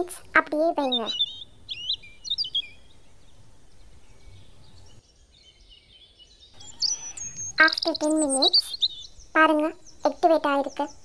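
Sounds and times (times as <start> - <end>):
birds chirping: 0.0 - 11.0
faint background hiss: 0.0 - 11.0.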